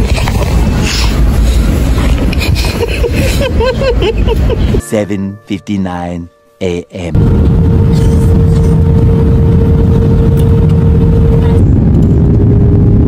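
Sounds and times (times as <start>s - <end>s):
rushing air: 0.0s - 3.7s
jet engines rumbling: 0.0s - 4.8s, 7.2s - 13.0s
steady hum: 7.0s - 13.0s.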